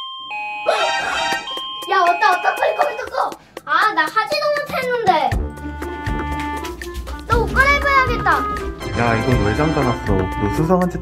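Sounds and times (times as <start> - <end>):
electronic door chime: 0.0 - 3.3.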